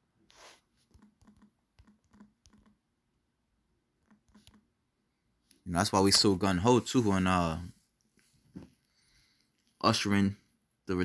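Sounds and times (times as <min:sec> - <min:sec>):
touchscreen typing ticks: 0:00.9 - 0:02.8, 0:04.0 - 0:04.7.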